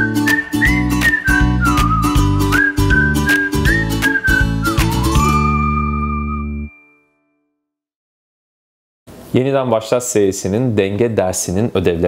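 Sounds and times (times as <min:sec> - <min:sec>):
beat and bass: 0:00.0 - 0:06.7
whistled jingle melody: 0:00.0 - 0:07.5.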